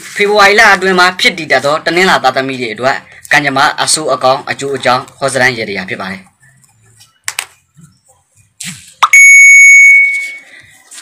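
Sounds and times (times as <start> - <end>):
high-pitched beep: 9.0 - 10.6.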